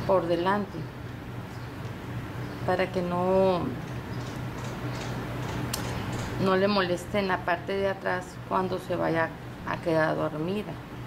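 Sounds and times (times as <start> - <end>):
sharp click: 3.9 - 6.4.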